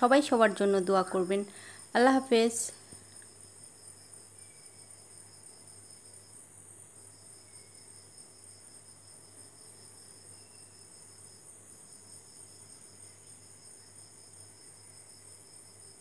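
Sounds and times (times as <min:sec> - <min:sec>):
high-pitched insect trilling: 0:01.2 - 0:06.4, 0:07.0 - 0:16.0.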